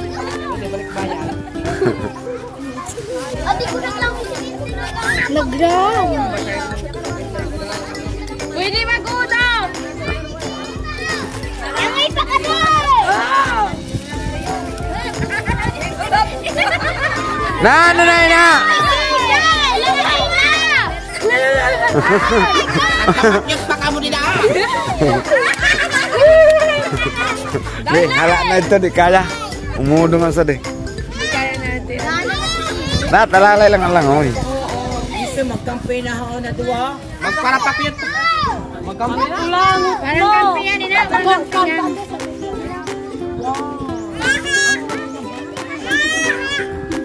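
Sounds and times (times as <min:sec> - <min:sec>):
children shouting: 0:00.0 - 0:29.8, 0:30.9 - 0:33.2, 0:37.1 - 0:47.0
background music: 0:00.0 - 0:47.0.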